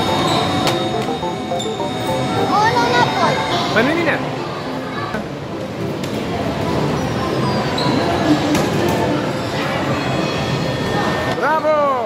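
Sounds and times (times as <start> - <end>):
game machine sounds: 0.0 - 4.4
faint music: 0.0 - 12.0.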